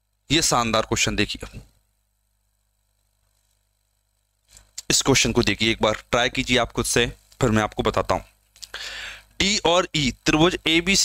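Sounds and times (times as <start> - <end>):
faint low hum: 0.0 - 11.0
man speaking: 0.3 - 1.6, 4.8 - 8.3, 9.4 - 11.0.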